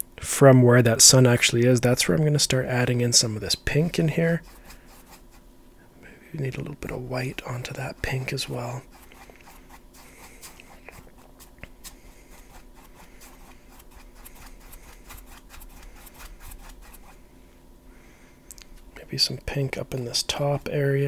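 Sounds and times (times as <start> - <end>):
low steady hum: 0.0 - 21.0
paintbrush scratching on canvas: 3.7 - 5.4, 6.6 - 17.2.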